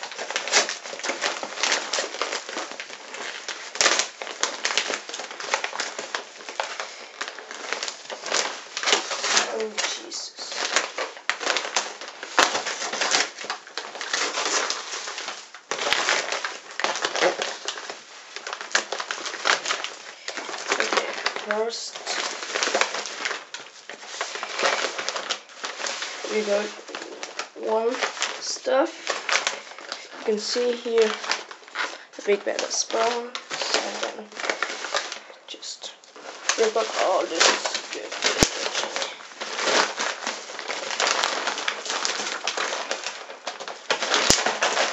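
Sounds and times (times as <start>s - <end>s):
plastic bag crinkling and tearing: 0.0s - 44.9s.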